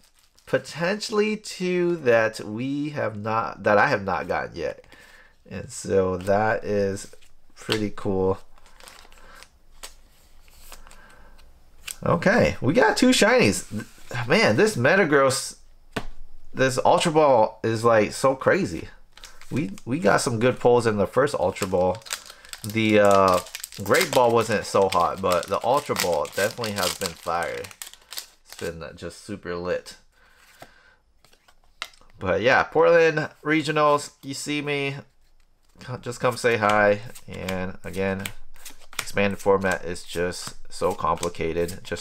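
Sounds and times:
card in plastic sleeve rustling: 0.0s - 1.2s, 5.7s - 14.8s, 18.5s - 29.2s, 33.6s - 42.0s.

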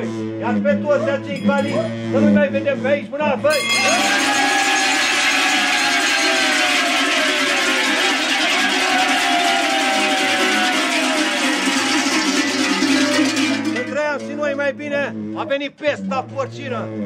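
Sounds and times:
large cowbells clanging: 0.0s - 17.0s.

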